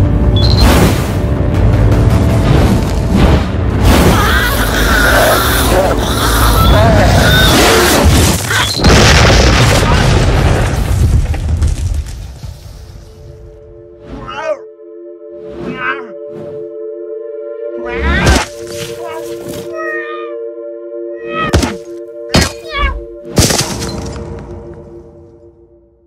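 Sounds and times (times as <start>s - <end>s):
low rumble: 0.0s - 4.1s
sustained music chord: 13.2s - 23.4s.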